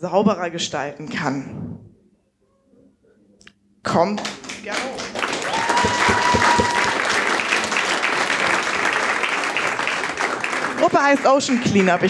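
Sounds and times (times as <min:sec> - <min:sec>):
audience applauding: 0:04.2 - 0:12.0.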